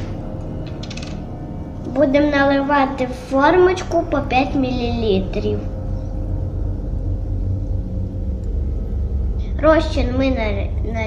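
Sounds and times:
faint hum: 0.0 - 11.0
low rumble: 0.0 - 11.0.

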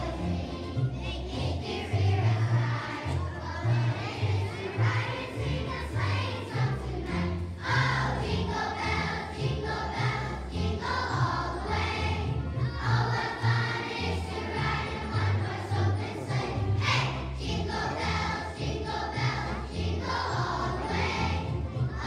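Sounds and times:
children's choir singing: 0.0 - 22.0
instrumental accompaniment with bass: 0.0 - 22.0.

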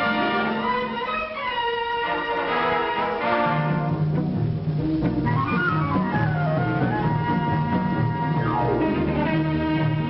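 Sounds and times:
orchestral strings: 0.0 - 10.0.

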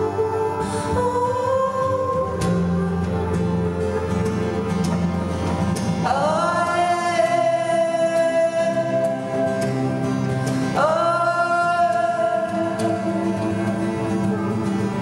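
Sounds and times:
woman singing: 0.0 - 4.9, 6.0 - 9.6, 10.7 - 15.0
electric bass guitar: 0.0 - 7.9
acoustic guitar: 0.0 - 15.0.

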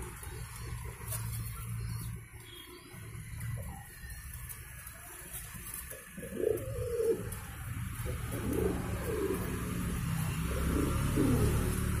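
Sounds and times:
pigeons cooing: 5.1 - 12.0.

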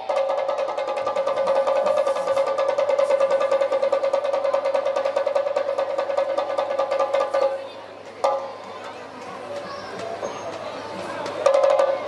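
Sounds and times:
snare drum roll: 0.0 - 7.6.

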